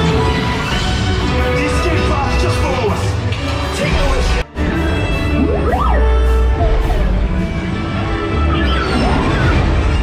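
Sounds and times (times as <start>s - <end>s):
orchestral music: 0.0s - 10.0s
tone sweeping up: 5.2s - 7.6s
space battle sound effects: 5.2s - 7.8s.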